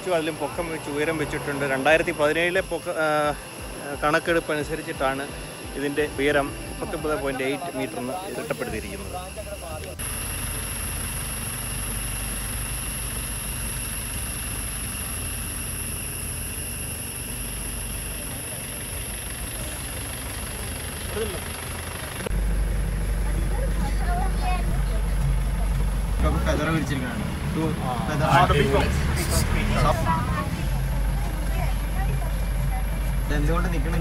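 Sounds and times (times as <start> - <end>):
vehicle engine low rumble: 8.6 - 34.0.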